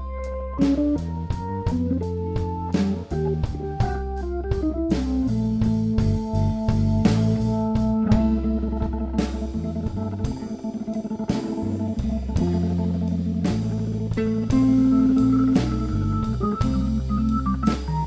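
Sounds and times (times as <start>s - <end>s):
bass guitar: 0.0s - 18.0s
drums: 0.0s - 18.0s
electric guitar: 0.0s - 18.0s
organ: 0.0s - 18.0s.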